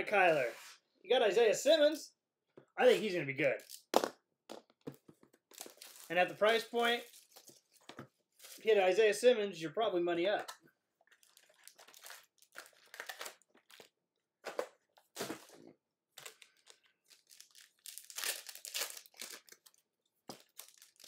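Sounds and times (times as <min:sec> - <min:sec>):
plastic wrappers crinkling and tearing: 0:05.4 - 0:08.6, 0:11.0 - 0:21.0.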